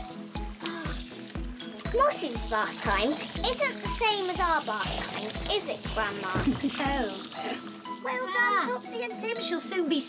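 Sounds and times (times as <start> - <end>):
background music with low thumps: 0.0 - 8.0
shower head spraying water: 0.1 - 8.0.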